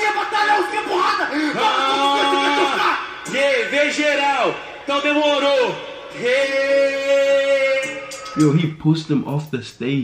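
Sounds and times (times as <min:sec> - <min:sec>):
man talking over microphone: 0:00.0 - 0:10.0.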